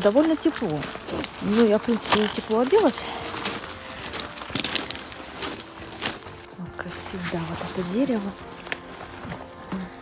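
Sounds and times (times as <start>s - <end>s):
footsteps crunching on wet gravel: 0.0s - 10.0s.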